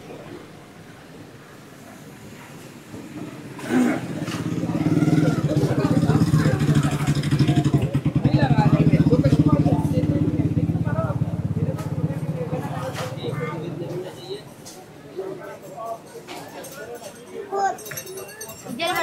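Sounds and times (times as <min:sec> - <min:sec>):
voices of passers-by: 0:00.0 - 0:19.0
small engine running: 0:03.6 - 0:13.0.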